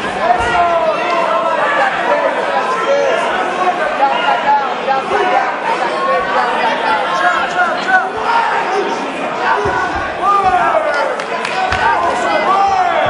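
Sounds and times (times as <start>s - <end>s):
crowd talking and shouting: 0.0s - 13.0s.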